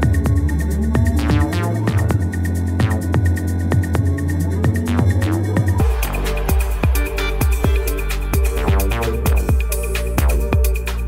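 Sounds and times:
deep bass hum: 0.0 - 11.0
electronic dance music: 0.0 - 11.0.

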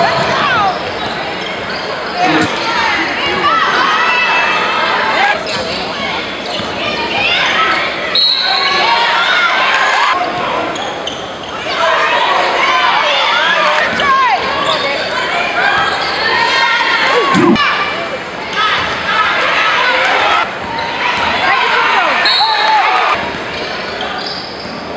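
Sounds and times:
voices of players and spectators: 0.0 - 24.9
sneakers squeaking on hardwood: 6.5 - 6.8.

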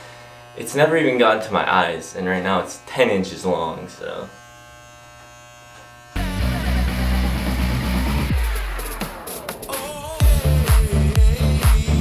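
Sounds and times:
electric hair clippers buzzing: 0.0 - 11.9
electronic music with heavy bass: 6.2 - 12.0.

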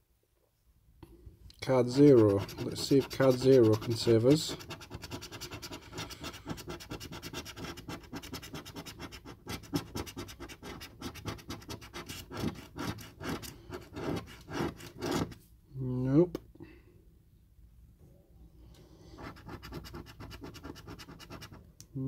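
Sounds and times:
coin scraping scratch card: 1.9 - 15.4, 19.2 - 21.6.

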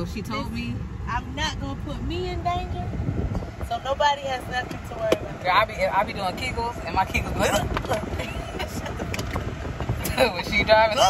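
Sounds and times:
car cabin rumble while driving: 0.0 - 11.0.

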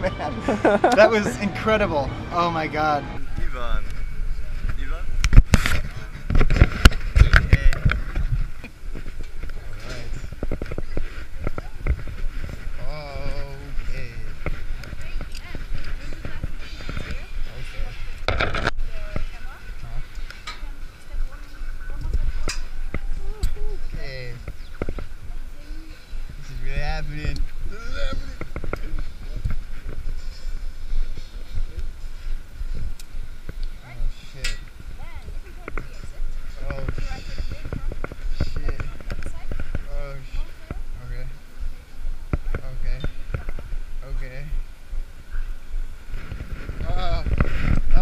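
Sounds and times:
indistinct voices: 0.0 - 32.9
man talking: 1.0 - 3.8
wind rumble on microphone: 3.2 - 48.0.

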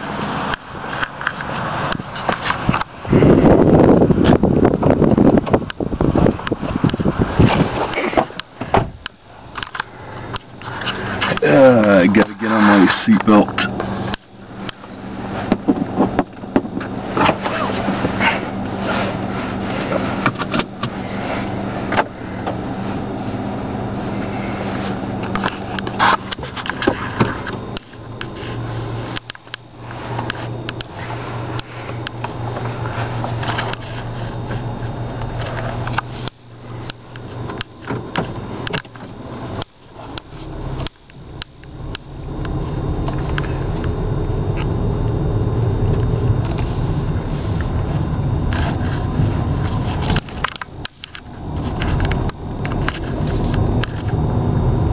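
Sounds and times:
car engine humming: 0.0 - 54.9.

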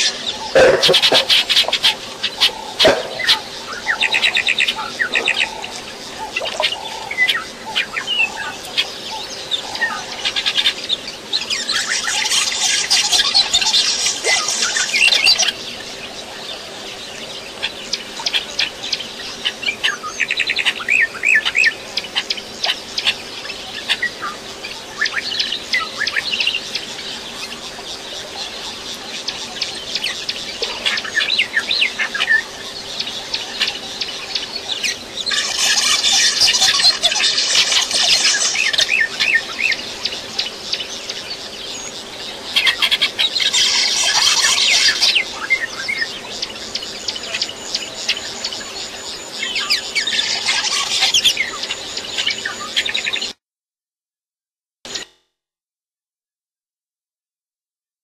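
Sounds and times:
small birds chirping: 0.0 - 53.4
whistled bird notes: 33.5 - 40.8.

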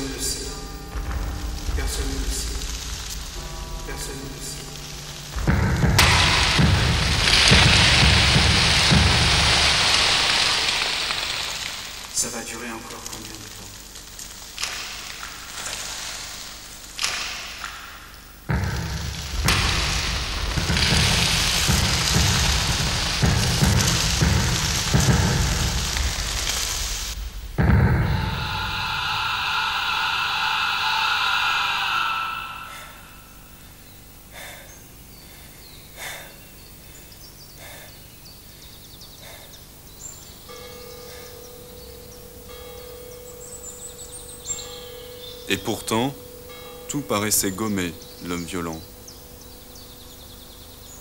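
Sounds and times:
low rumble: 0.0 - 12.0, 18.3 - 34.2
birds chirping: 0.0 - 16.0, 16.6 - 51.0
dense crackling hiss: 0.0 - 51.0.

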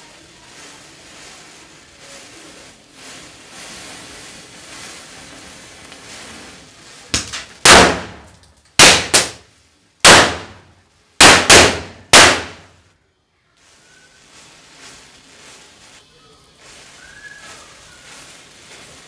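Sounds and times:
matchsticks burning hiss: 0.0 - 8.7, 14.3 - 19.0
firecracker bangs: 7.1 - 12.8.

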